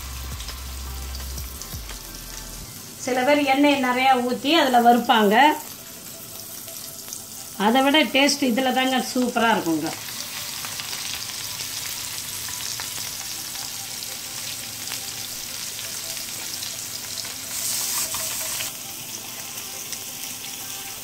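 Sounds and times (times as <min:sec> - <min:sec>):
fish sizzling in oil: 0:00.0 - 0:21.0.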